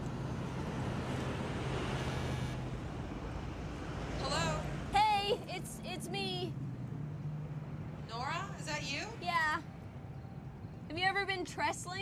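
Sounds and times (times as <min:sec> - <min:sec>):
truck engine hum: 0:00.0 - 0:12.0.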